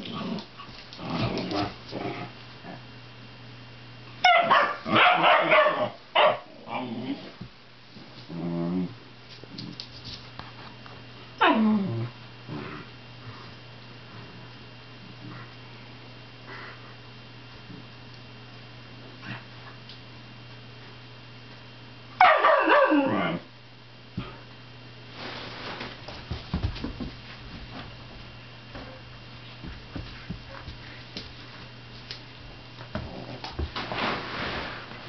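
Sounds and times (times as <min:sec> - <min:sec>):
dog yelping: 0:04.2 - 0:06.4, 0:22.2 - 0:23.4
dog paws thumping and scuffling: 0:09.3 - 0:10.6, 0:25.1 - 0:35.0.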